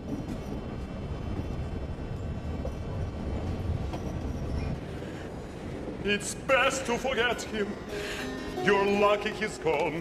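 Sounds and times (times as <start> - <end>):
train wheels rumbling on rails: 0.0 - 10.0.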